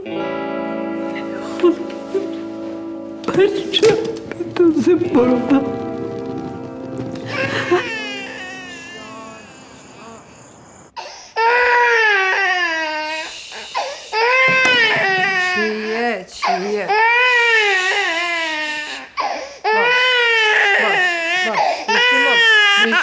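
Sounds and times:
baby crying: 7.3s - 23.0s.

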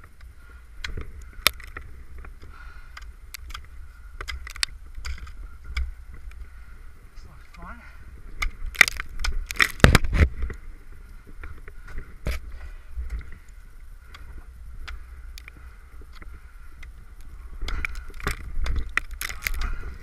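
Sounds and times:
ice axes striking wet ice: 8.4s - 10.3s, 17.6s - 19.9s.

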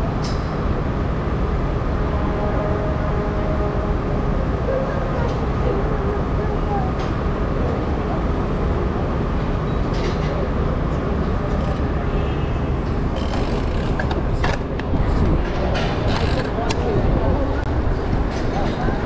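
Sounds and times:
pedestrians chatting: 0.0s - 19.0s
traffic rumble: 0.0s - 19.0s.

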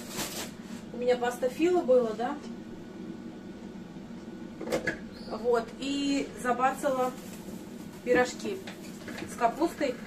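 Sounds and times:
kitchen appliance humming: 1.9s - 10.0s.

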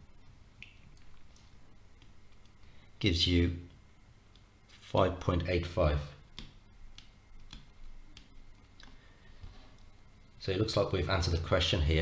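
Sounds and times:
stylus tapping on tablet: 6.3s - 8.7s.

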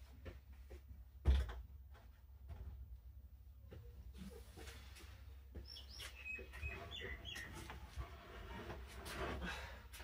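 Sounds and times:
small bird chirping: 5.6s - 7.9s.

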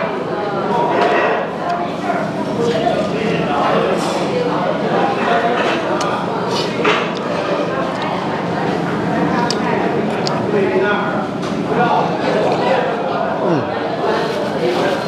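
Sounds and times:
indistinct chatter: 0.0s - 15.0s.

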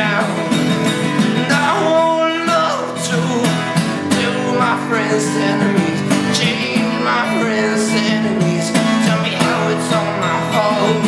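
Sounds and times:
acoustic guitar strummed: 0.0s - 11.0s
man singing through clenched teeth: 0.0s - 11.0s.

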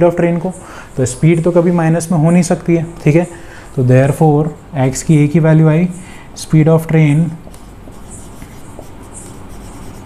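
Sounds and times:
marker pen writing on whiteboard: 6.8s - 10.0s.

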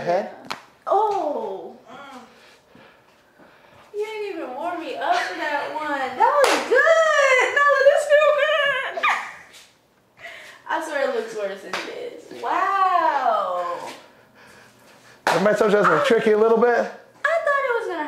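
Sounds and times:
woman squealing and crying out: 8.8s - 9.5s.

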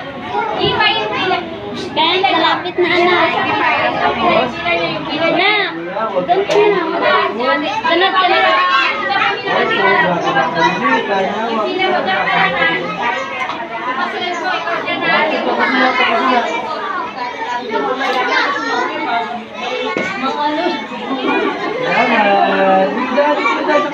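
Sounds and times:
children and adults chattering: 0.0s - 23.9s.

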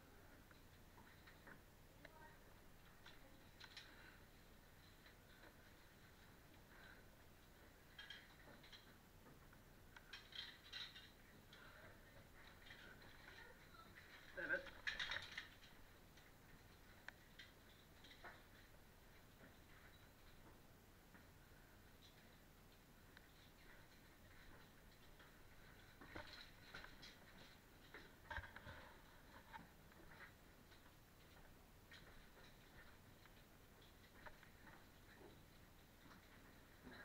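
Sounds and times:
caving gear clinking and scraping: 0.1s - 37.0s
faint clicks and taps: 0.1s - 37.0s.

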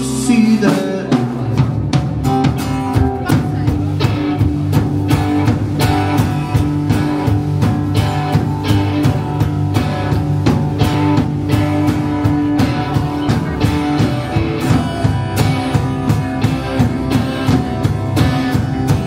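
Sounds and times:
drum kit beat: 0.0s - 19.0s
electric guitars: 0.0s - 19.0s
strummed acoustic guitar: 0.0s - 19.0s.

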